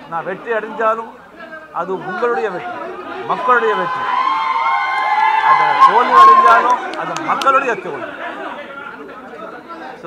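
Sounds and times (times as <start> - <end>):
chatter of several voices: 5.4 - 10.0
main speech: 5.4 - 10.0.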